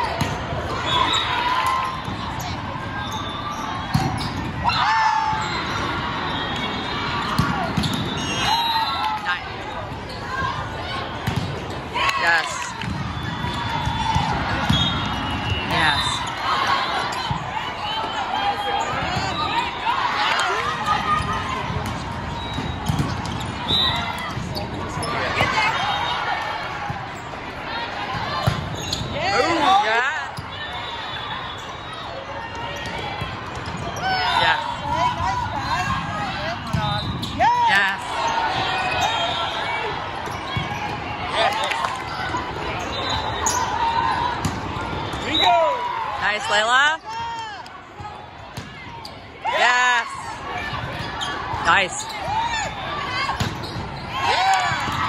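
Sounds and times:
background chatter: 0:00.0 - 0:55.0
players calling and shouting: 0:00.0 - 0:55.0.

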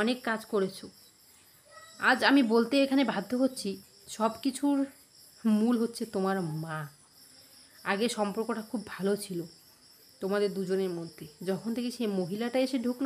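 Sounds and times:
woman talking: 0:00.0 - 0:01.0, 0:01.9 - 0:07.0, 0:07.8 - 0:09.6, 0:10.2 - 0:13.0
insects chirring: 0:00.0 - 0:13.0.

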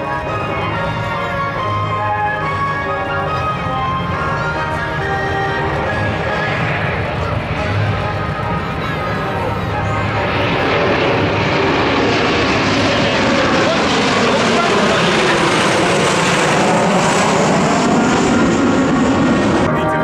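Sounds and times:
jets flying low overhead: 0:00.0 - 0:20.0.

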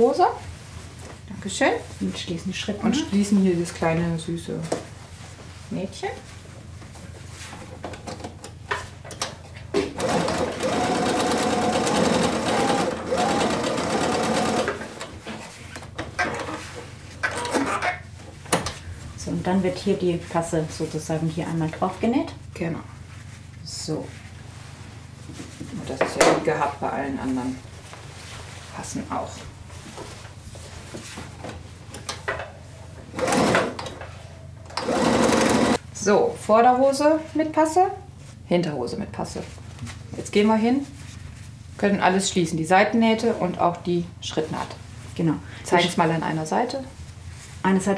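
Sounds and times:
sewing machine stitching: 0:10.0 - 0:15.1, 0:33.1 - 0:33.8, 0:34.7 - 0:35.8.

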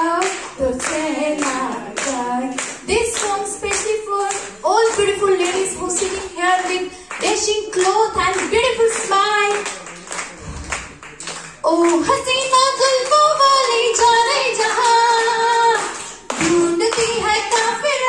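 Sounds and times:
woman singing into a microphone: 0:00.0 - 0:09.6, 0:11.6 - 0:18.0
listeners clapping along: 0:00.0 - 0:18.0.

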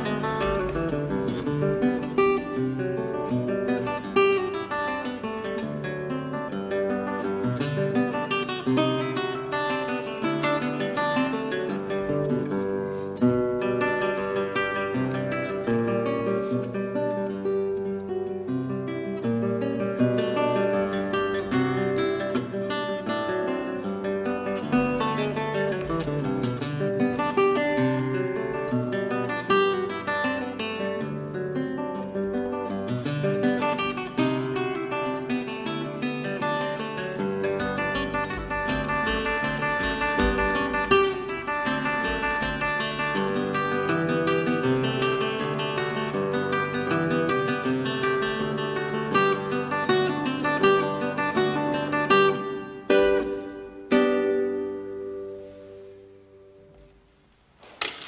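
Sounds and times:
fingerstyle classical guitar: 0:00.0 - 0:58.0.

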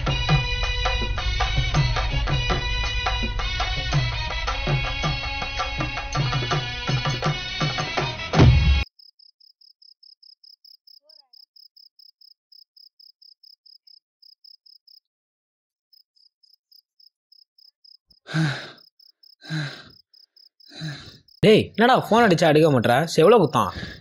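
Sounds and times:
crickets chirping: 0:08.9 - 0:15.1, 0:15.9 - 0:22.4
man's breathy vocal sounds: 0:18.3 - 0:18.8, 0:19.4 - 0:20.0, 0:20.7 - 0:21.3, 0:23.7 - 0:24.0.

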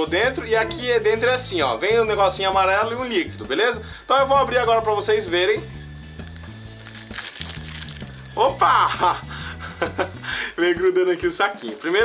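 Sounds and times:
background music with stepping bass: 0:00.0 - 0:12.0
plastic film crinkling: 0:06.2 - 0:08.8, 0:10.6 - 0:12.0.

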